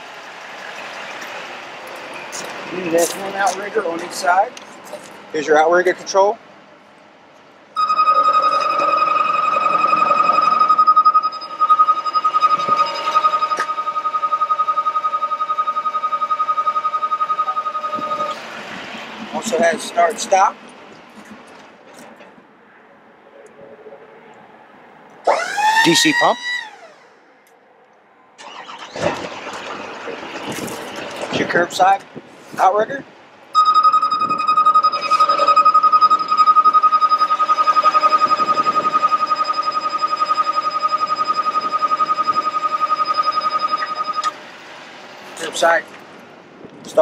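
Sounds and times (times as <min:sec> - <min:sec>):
electronic warning alarm: 0:07.8 - 0:18.4, 0:33.6 - 0:44.4.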